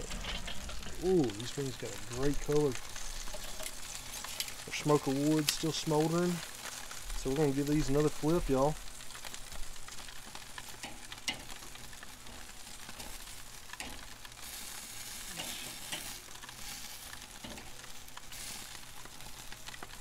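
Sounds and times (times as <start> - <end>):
food sizzling on a grill: 0.0 - 20.0
tongs clicking on grill grate: 10.6 - 11.6, 12.3 - 14.6, 15.4 - 17.7.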